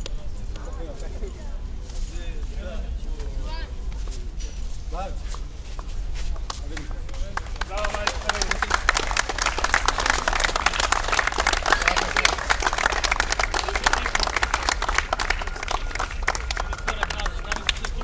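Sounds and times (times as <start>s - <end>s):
voices: 0.0s - 18.0s
group clapping: 6.3s - 18.0s.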